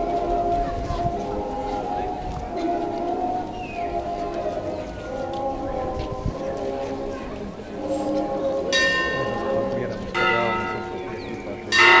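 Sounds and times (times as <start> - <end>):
church bell tolling: 7.7 - 12.0.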